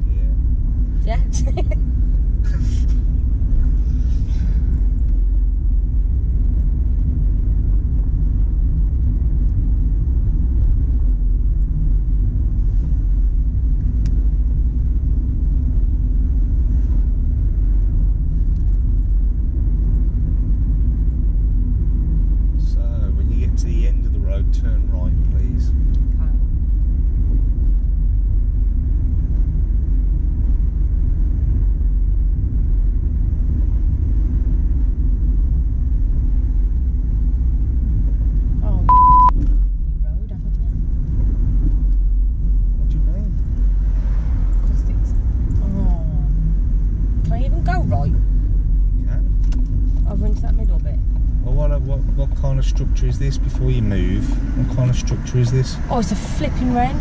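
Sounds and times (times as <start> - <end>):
car cabin road rumble: 0.0 - 57.0.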